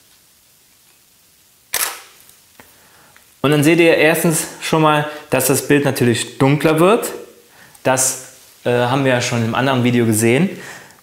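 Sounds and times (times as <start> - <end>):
camera shutter clack: 1.7 - 2.2.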